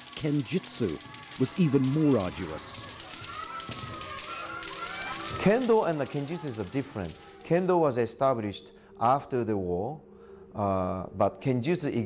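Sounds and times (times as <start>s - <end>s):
long high-pitched shout: 0.4s - 7.5s.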